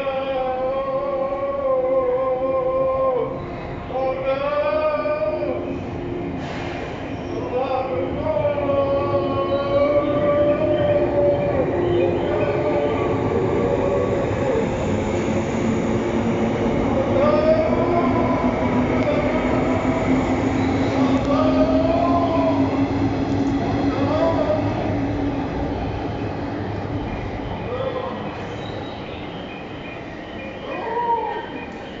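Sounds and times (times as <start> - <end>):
wheel and rail noise: 3.6 - 32.0
electric train motor whine: 10.6 - 27.4.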